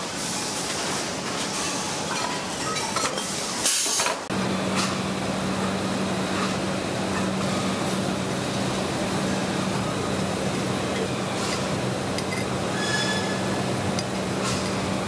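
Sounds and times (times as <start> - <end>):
machinery low hum: 4.3 - 15.0.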